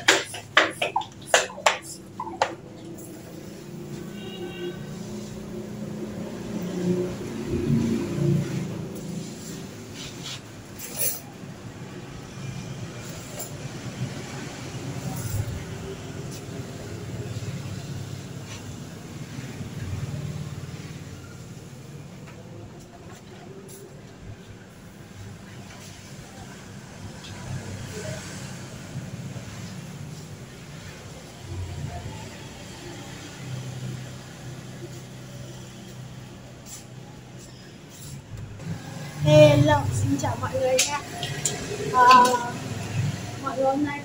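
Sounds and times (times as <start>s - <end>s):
vehicle engine passing by: 4.8s - 10.8s, 25.7s - 43.6s.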